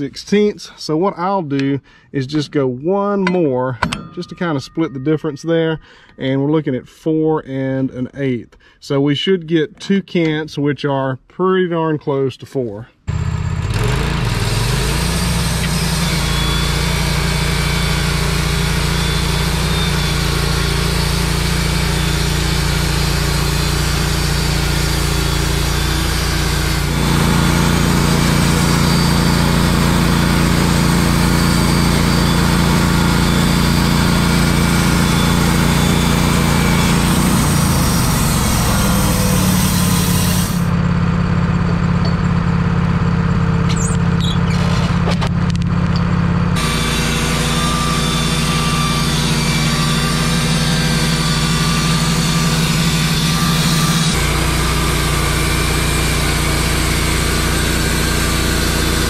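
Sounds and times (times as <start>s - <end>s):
gas engine running: 13.1s - 59.0s
band saw blade cutting log: 13.7s - 40.8s, 43.7s - 45.3s, 46.6s - 59.0s.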